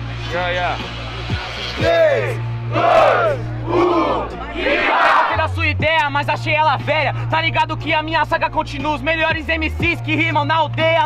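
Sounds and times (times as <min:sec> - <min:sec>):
crowd shouting together: 0:01.8 - 0:05.4.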